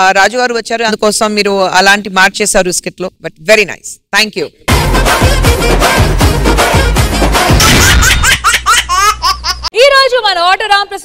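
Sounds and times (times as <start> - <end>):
person laughing: 7.5 - 9.7.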